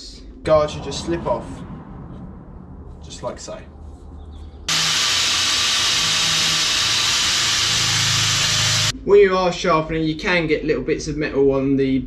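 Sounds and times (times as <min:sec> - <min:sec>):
angle grinder grinding steel: 0:04.7 - 0:08.9.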